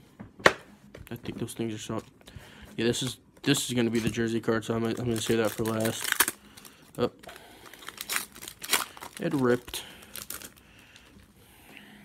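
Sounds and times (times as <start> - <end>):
foil wrapper crinkling and tearing: 3.6 - 11.2.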